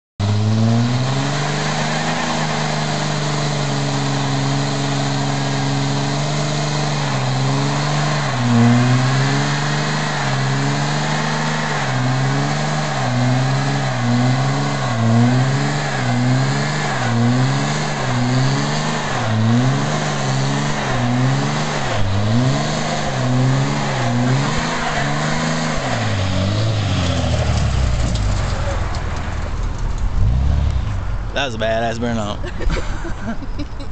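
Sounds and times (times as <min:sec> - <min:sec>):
diesel engine revving: 0:00.2 - 0:33.8.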